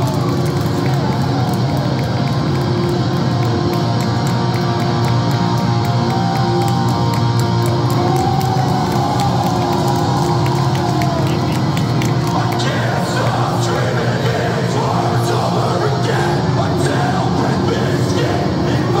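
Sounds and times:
distorted guitars: 0.0 - 19.0
drums: 0.0 - 19.0.

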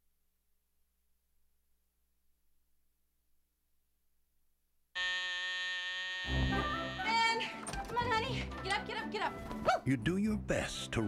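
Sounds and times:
alarm clock buzzer: 5.0 - 7.4.

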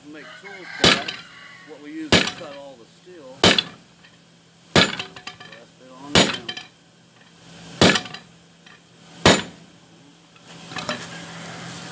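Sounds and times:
hammer blows on anvil: 6.1 - 6.7.

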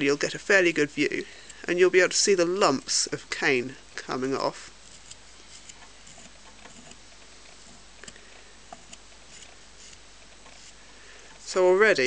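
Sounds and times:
knife scraping cane: 4.6 - 7.0, 7.6 - 10.8.

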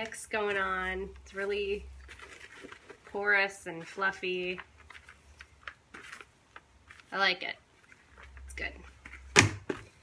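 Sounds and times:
potting mix stirred in bucket: 0.0 - 7.3.

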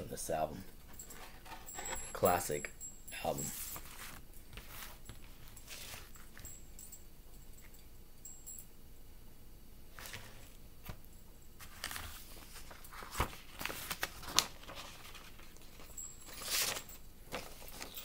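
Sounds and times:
paper and cardboard rustling: 3.4 - 6.4, 9.9 - 11.0, 11.6 - 18.0.

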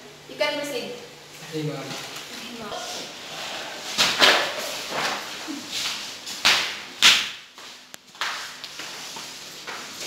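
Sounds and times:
swishes and knocks of books: 3.9 - 7.3.

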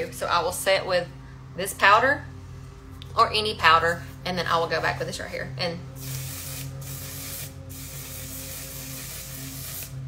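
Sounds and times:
aerosol spray hissing: 6.0 - 10.0.

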